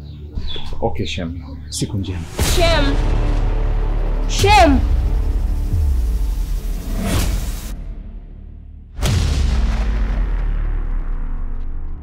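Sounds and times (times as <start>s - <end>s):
deep cinematic impact boom: 2.4s - 12.0s.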